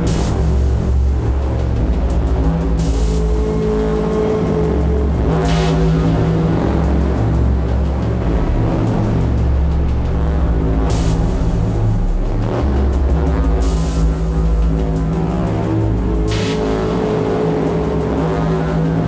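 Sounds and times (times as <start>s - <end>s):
hissing noise bursts: 0.0s - 8.3s, 10.8s - 18.1s
low electronic drone: 0.0s - 19.0s.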